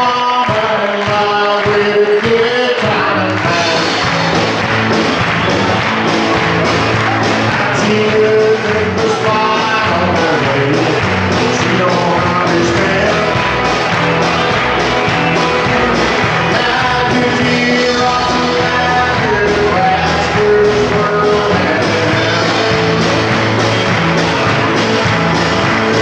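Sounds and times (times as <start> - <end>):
person singing: 0.0 - 4.8, 5.9 - 26.0
country band playing: 0.0 - 26.0
drum kit: 0.0 - 26.0.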